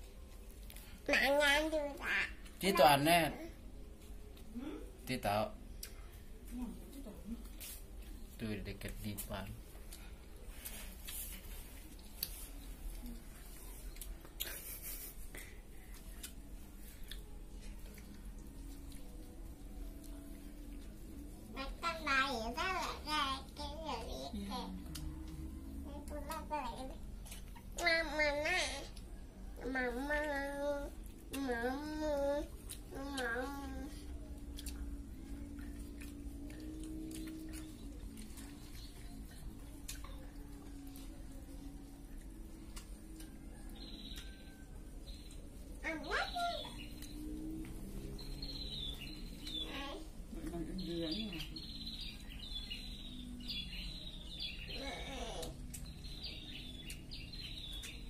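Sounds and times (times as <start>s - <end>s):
steady low hum: 0.0s - 58.0s
small bird chirping: 42.7s - 58.0s.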